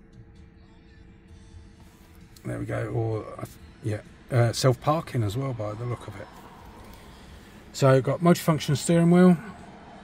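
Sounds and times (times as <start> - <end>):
low steady tones: 0.0 - 10.0.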